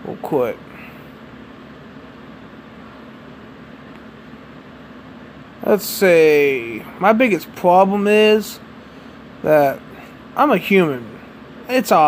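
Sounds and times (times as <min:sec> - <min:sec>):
faint hum: 0:00.0 - 0:12.0
low background hiss: 0:00.0 - 0:12.0.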